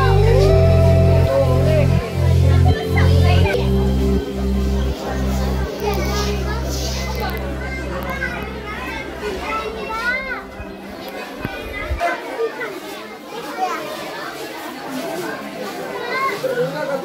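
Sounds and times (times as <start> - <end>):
steady low hum: 0.0 - 12.0
children chattering and calling out: 0.0 - 17.0.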